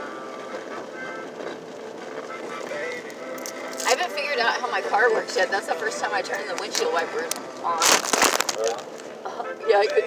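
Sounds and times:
engine and road noise in cabin: 0.0s - 10.0s.

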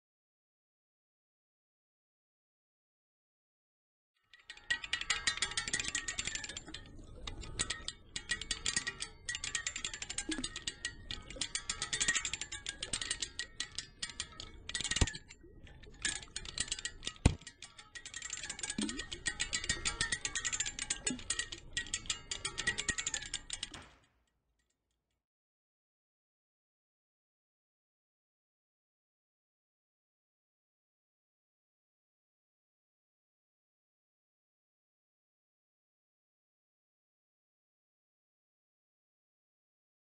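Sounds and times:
paddle wheel clicking and rattling: 4.3s - 24.0s.

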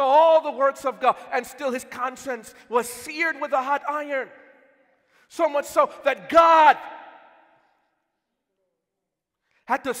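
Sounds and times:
echo of man's amplified voice: 0.0s - 10.0s.

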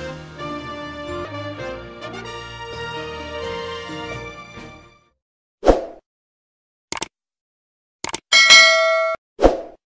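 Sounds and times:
bright bell ding: 8.3s - 9.2s.

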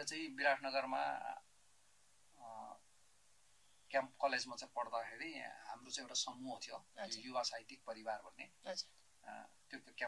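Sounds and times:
person speaking: 0.0s - 1.5s, 2.3s - 2.9s, 3.9s - 10.0s.

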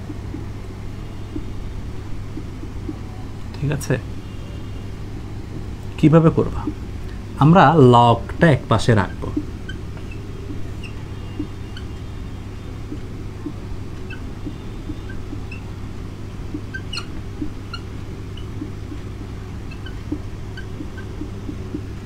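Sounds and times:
steady low hum: 0.0s - 22.0s
marker squeaking on whiteboard: 9.1s - 12.1s, 12.9s - 15.7s, 16.6s - 18.8s, 19.7s - 21.6s.

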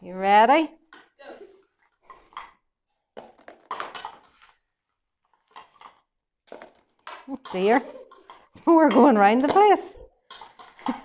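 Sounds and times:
wrapped sweets clattering into bowl: 3.2s - 11.0s.

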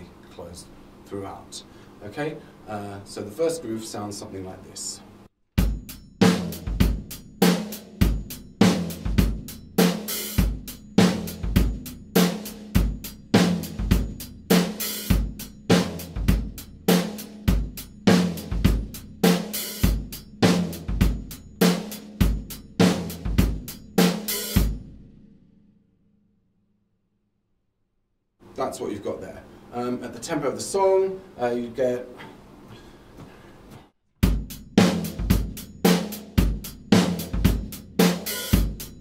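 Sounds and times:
drum kit disco groove: 5.6s - 24.8s, 34.2s - 39.0s.

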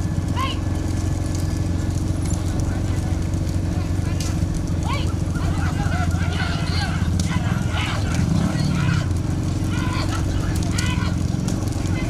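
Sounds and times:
hooves clattering on asphalt: 0.0s - 12.0s
motorcycle engines running: 0.0s - 12.0s
men shouting: 0.3s - 0.7s, 2.3s - 12.0s.

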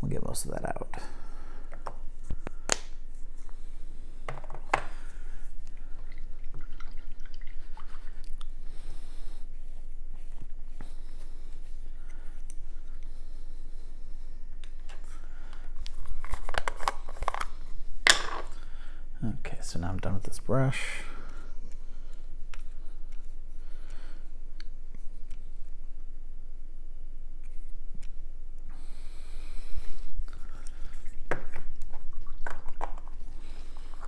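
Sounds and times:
low hum: 0.0s - 34.0s
hands handling painting supplies: 14.6s - 18.6s.

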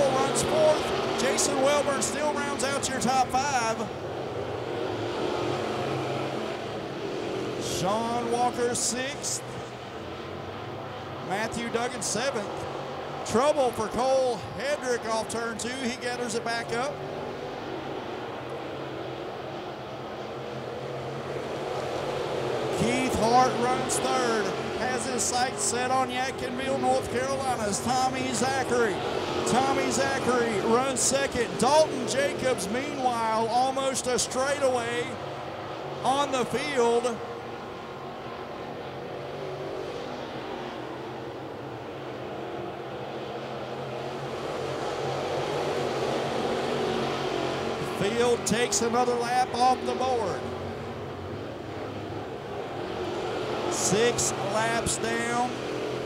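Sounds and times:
race car engines droning: 0.0s - 56.0s.

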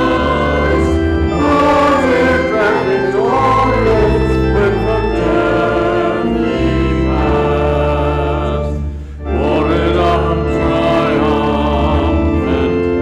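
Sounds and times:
congregation singing a hymn: 0.0s - 13.0s
organ accompaniment: 0.0s - 13.0s.

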